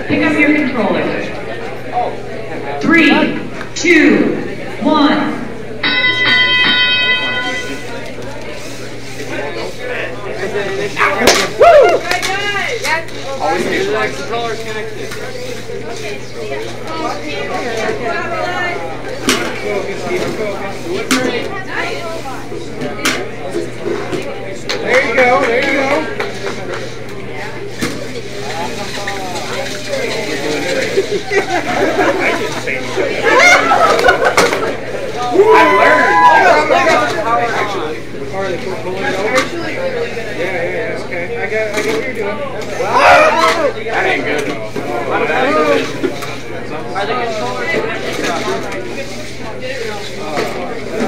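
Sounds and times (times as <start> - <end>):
indistinct talk among people: 0.0 - 51.0
bright electronic musical tone: 5.8 - 8.2.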